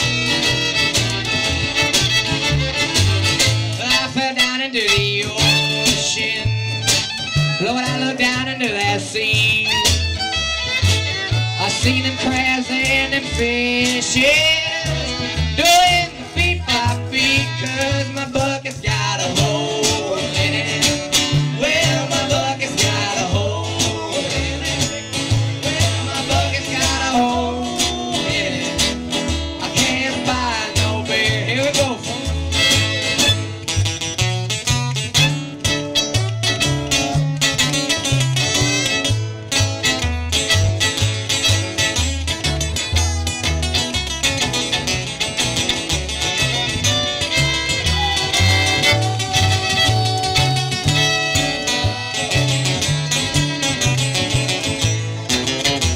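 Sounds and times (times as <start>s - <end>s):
bass line: 0.0s - 55.9s
guitars: 0.0s - 55.9s
live band playing: 0.0s - 55.9s.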